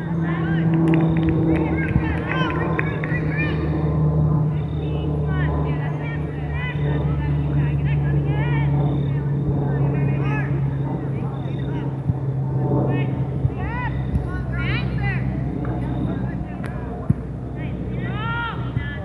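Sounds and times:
distant shouts and calls: 0.0s - 19.0s
steady low drone: 0.0s - 19.0s.

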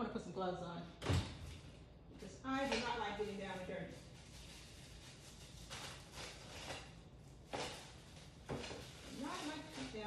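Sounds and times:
gloves rustling: 2.5s - 10.0s.

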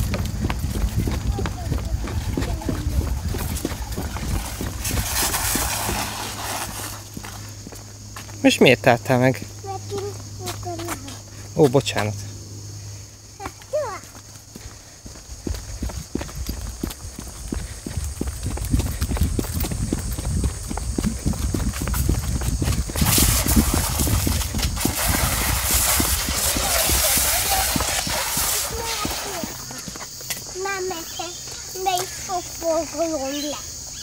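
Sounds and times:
jogging footsteps on concrete: 0.0s - 8.6s, 9.4s - 12.2s, 13.2s - 34.0s
loud hiss: 4.3s - 7.4s, 22.6s - 29.9s.

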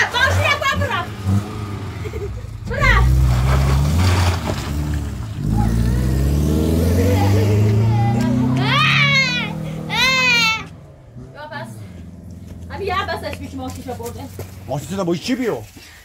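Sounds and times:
car engine accelerating: 0.0s - 15.4s.

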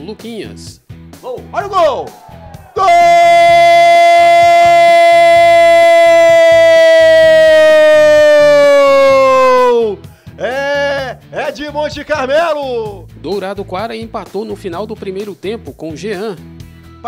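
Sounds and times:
background music: 0.0s - 17.0s
commentator's drawn-out goal cry: 1.4s - 11.2s.

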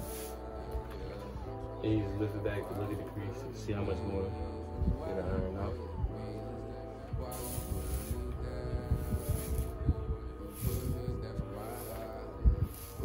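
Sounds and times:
iron hissing steam: 0.0s - 0.4s, 7.3s - 9.8s, 10.4s - 13.0s
background music sustained notes: 0.0s - 13.0s.

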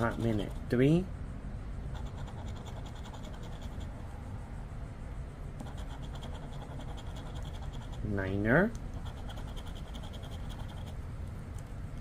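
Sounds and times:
coin scratching lottery ticket: 0.0s - 0.8s, 2.0s - 3.9s, 5.6s - 8.2s, 9.0s - 11.0s.

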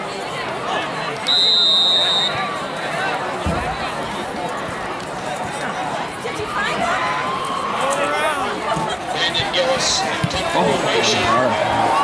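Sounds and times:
crowd chatter: 0.0s - 12.0s
referee's whistle blast: 1.2s - 2.4s.

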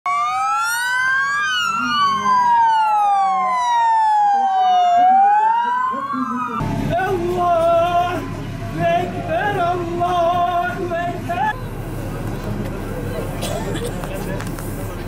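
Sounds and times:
police sirens wailing: 0.0s - 13.3s
low vehicle rumble: 0.3s - 15.0s
voices: 4.4s - 15.0s.

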